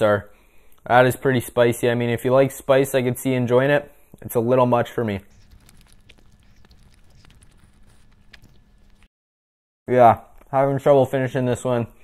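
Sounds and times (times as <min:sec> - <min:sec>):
chewing flaky pastry: 0:05.2 - 0:09.1.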